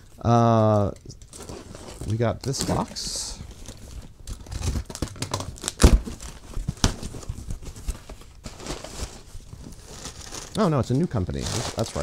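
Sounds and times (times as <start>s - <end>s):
cardboard flaps and plastic rustling: 1.2s - 12.0s.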